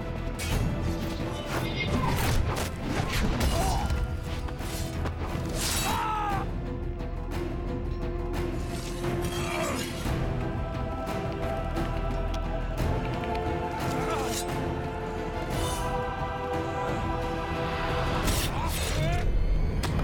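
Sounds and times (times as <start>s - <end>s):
film score music: 0.0s - 20.0s.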